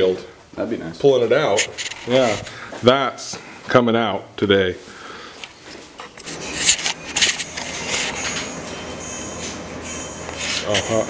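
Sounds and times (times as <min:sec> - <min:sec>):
camera handling scraping: 0:01.6 - 0:02.6, 0:06.0 - 0:08.4.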